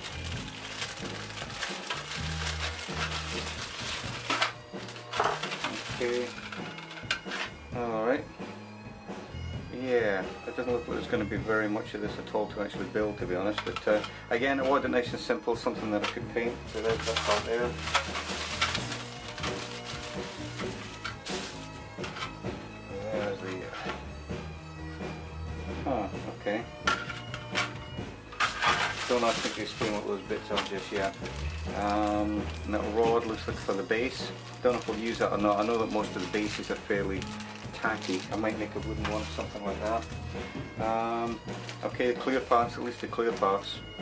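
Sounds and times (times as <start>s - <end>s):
plastic bag crinkling: 0.0s - 7.3s, 16.7s - 22.3s, 28.4s - 40.2s
background music with bass: 0.0s - 44.0s.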